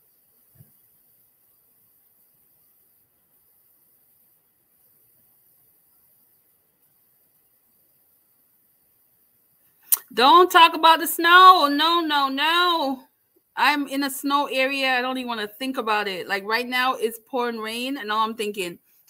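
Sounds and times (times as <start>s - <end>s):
sharp click: 9.9s - 10.1s.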